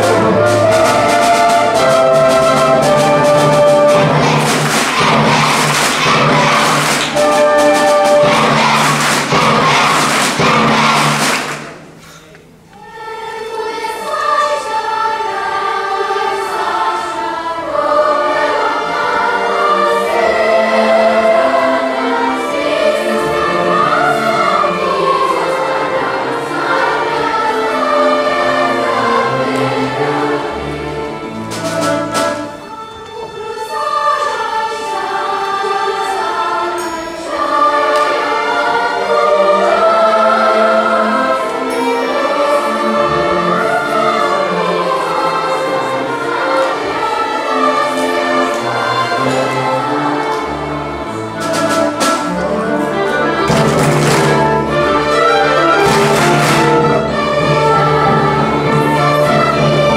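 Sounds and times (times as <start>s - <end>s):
children's choir singing: 0.0s - 59.9s
orchestral accompaniment: 0.0s - 59.9s.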